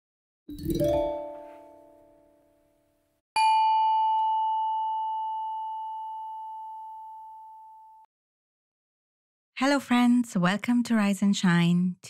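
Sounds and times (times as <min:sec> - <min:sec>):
bell-like ding ringing: 0:03.4 - 0:07.8.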